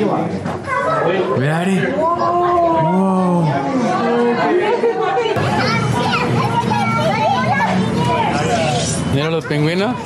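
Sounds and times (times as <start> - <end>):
hubbub of chatter: 0.0 - 10.0
children's voices: 0.5 - 10.0
people talking: 2.1 - 10.0.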